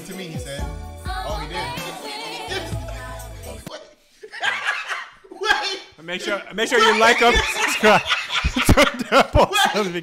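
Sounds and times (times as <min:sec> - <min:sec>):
music with bass line: 0:02.5 - 0:03.7
man laughing: 0:06.7 - 0:10.0.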